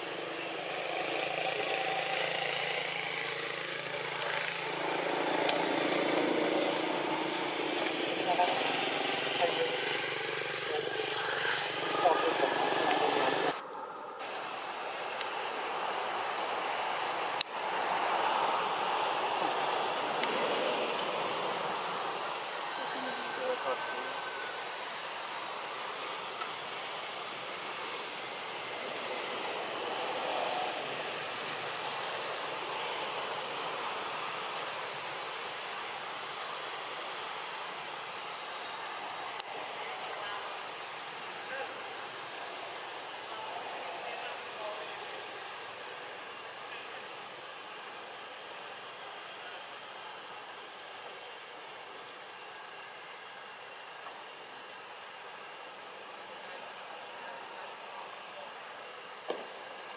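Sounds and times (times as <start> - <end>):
rushing hiss: 0.0 - 59.9
faint high steady tones: 8.1 - 15.7.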